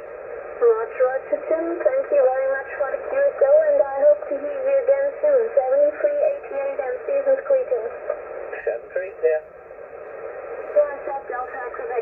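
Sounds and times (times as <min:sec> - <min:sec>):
faint tinny radio speech: 0:00.6 - 0:09.5.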